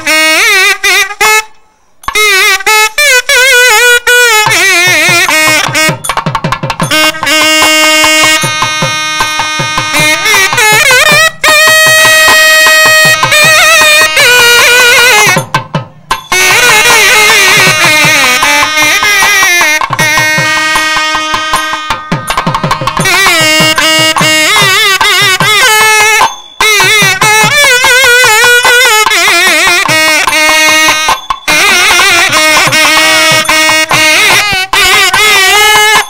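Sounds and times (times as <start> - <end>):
double-reed pipes playing melody: 0.0 - 6.2, 6.8 - 15.5, 16.3 - 36.0.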